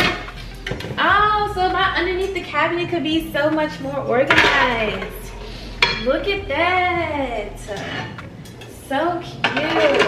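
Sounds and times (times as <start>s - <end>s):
metal pans clinking: 0.0s - 1.1s, 3.5s - 6.2s, 7.6s - 10.0s.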